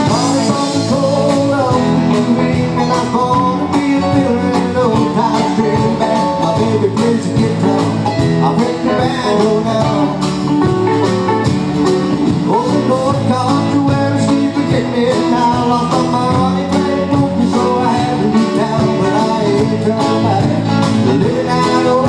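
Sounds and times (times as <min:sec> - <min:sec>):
live country band playing: 0:00.0 - 0:22.0
steady drum beat: 0:00.0 - 0:22.0.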